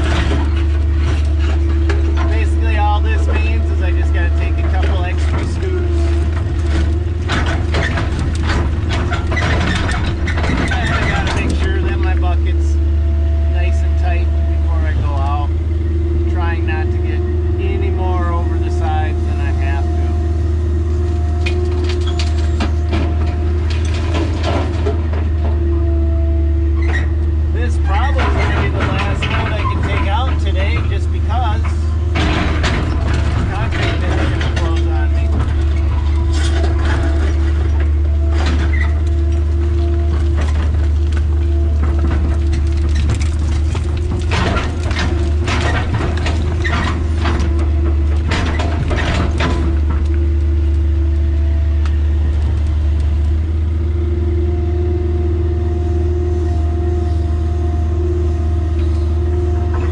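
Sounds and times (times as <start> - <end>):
bucket clanking and scraping: 0.0 - 12.8, 16.3 - 20.2, 21.4 - 25.8, 26.8 - 50.6
diesel engine running under load: 0.0 - 59.9
hydraulic whine: 0.0 - 59.9.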